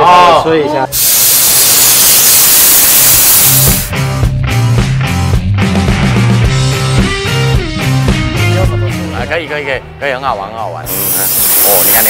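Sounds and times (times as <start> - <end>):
compressed air blow gun hissing: 0.9 - 4.0, 10.9 - 12.0
background music: 3.6 - 12.0.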